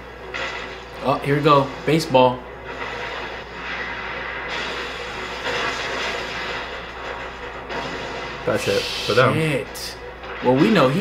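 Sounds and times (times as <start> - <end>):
rumbling rush of debris: 0.0 - 11.0.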